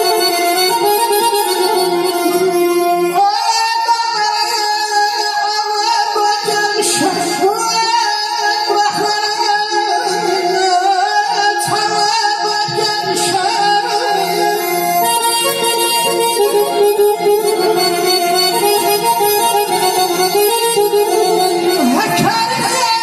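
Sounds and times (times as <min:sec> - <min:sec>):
button accordion melody: 0:00.0 - 0:23.0.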